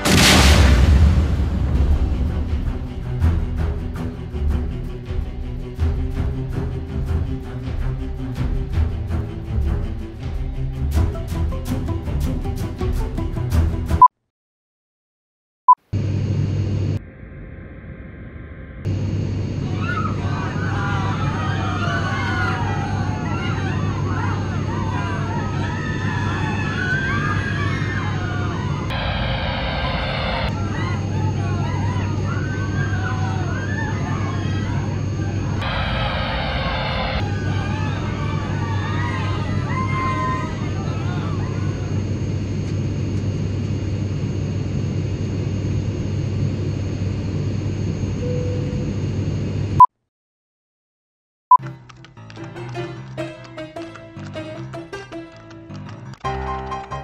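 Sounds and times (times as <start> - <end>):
airliner cabin drone: 15.9 - 49.8
steady tone: 28.9 - 30.6, 35.0 - 37.2.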